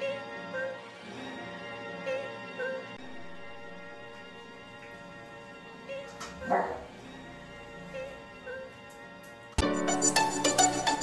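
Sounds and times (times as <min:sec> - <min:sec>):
soft background music: 0:00.0 - 0:11.0
dog barking: 0:06.4 - 0:06.9.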